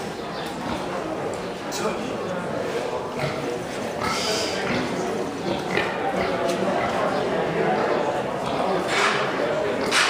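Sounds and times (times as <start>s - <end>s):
murmur of people talking: 0.0s - 10.0s
pigs grunting: 2.6s - 10.0s.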